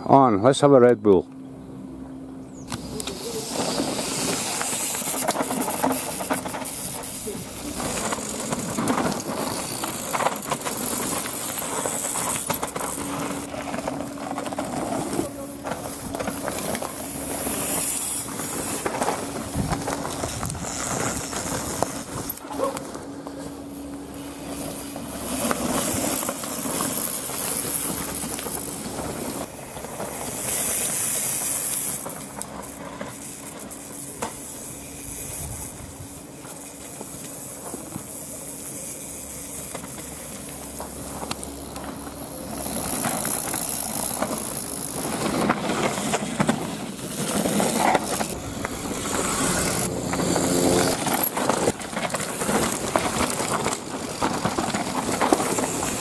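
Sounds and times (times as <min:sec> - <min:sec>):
bikes knocking and rattling: 0:02.5 - 0:56.0
tyres crunching on gravel: 0:02.8 - 0:35.1, 0:39.0 - 0:56.0.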